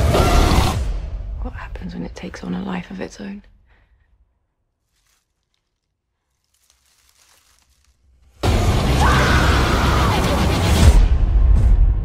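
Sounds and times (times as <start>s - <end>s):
dry leaves rustling under a hand: 4.8s - 8.4s.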